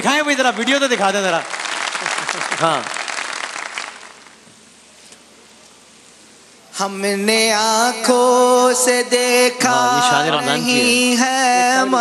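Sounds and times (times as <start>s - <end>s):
faint steady hiss: 0.0s - 12.0s
audience applause: 0.4s - 4.4s.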